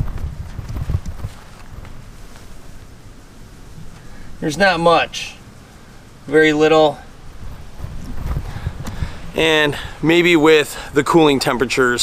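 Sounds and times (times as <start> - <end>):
footsteps on grass: 0.0 - 3.0, 7.2 - 9.8
quiet outdoor background: 0.0 - 12.0.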